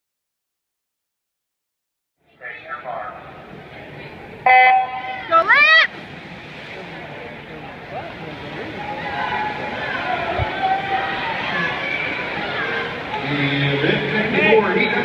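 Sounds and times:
spectators shouting and cheering: 3.8 - 6.8, 8.0 - 15.0.

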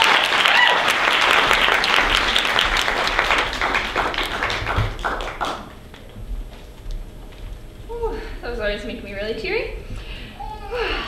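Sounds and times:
audience applauding: 0.0 - 6.2.

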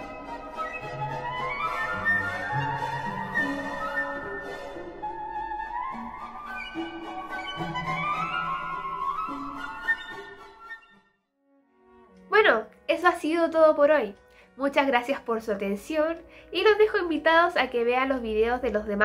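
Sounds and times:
woodwinds rising scales: 0.0 - 11.0.

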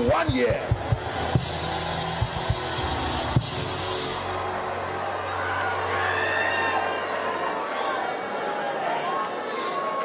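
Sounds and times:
drum hits: 0.0 - 4.0
congregation noise: 0.0 - 10.0.

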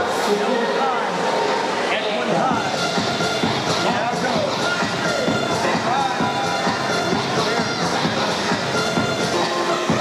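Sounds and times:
entrance music over a loudspeaker: 0.0 - 10.0.

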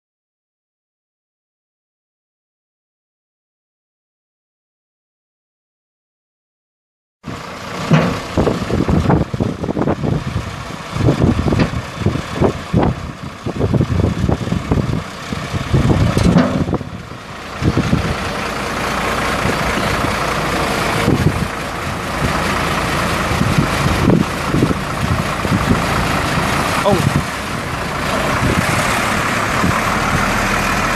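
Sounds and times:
diesel truck engine running: 7.2 - 30.9.

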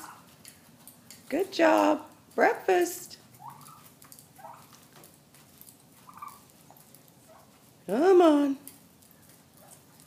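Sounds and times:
turkeys calling softly: 0.0 - 8.1, 8.9 - 10.0.

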